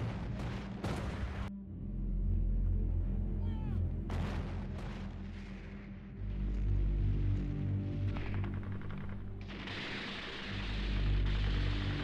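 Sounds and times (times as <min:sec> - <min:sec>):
low music drone: 0:00.0 - 0:12.0.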